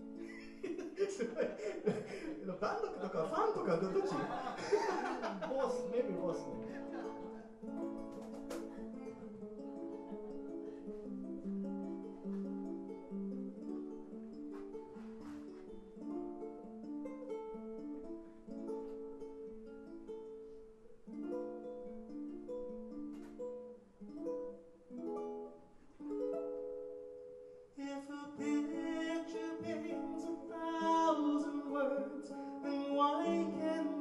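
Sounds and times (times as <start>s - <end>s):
ukulele plucked melody: 0.0s - 34.0s
cajon knocks: 8.0s - 8.8s.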